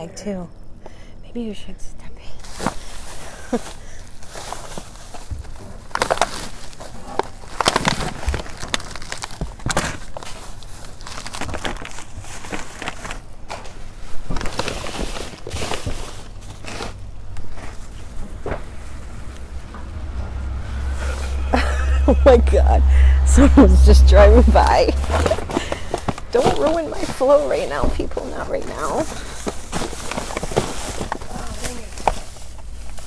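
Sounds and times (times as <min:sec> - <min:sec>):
plastic bags rustling and crinkling: 0:02.3 - 0:21.3, 0:24.6 - 0:33.0.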